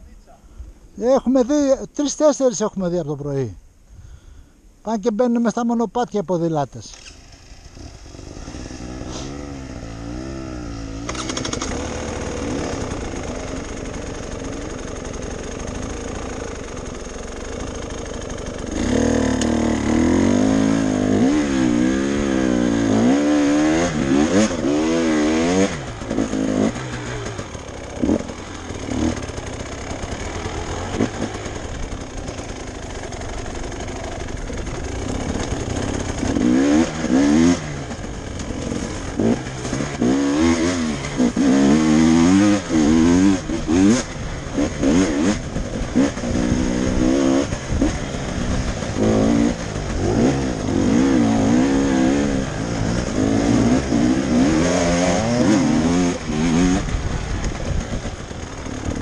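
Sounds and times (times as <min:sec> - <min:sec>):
motorcycle engine revving: 0:06.9 - 0:59.0.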